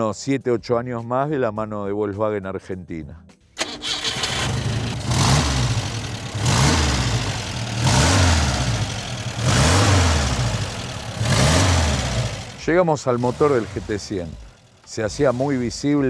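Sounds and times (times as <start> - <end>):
car engine revving: 3.6 - 16.0.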